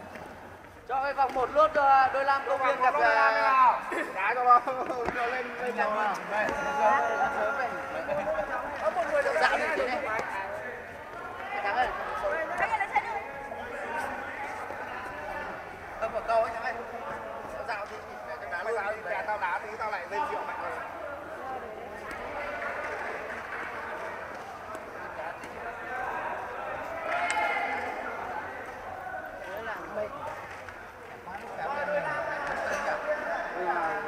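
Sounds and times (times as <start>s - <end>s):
echoing chatter of voices: 0.0s - 34.0s.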